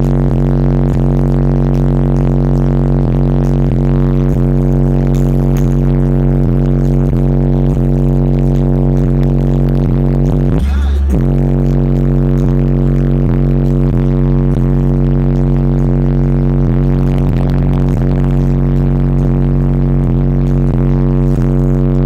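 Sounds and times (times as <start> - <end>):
deep pulsing bass music: 0.0 - 22.0.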